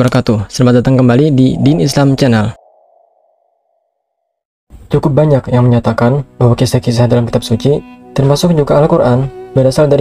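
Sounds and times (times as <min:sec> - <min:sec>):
person narrating: 0:00.0 - 0:02.7
faint tone: 0:01.3 - 0:04.4.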